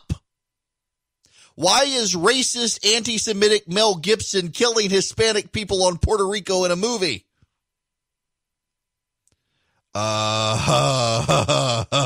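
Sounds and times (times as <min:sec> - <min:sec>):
man's voice: 0:01.6 - 0:07.2.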